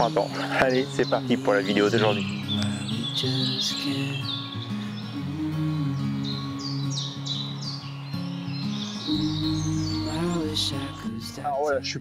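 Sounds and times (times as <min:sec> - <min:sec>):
low held background music: 0:00.0 - 0:03.9, 0:08.3 - 0:12.0
birds singing: 0:00.0 - 0:12.0.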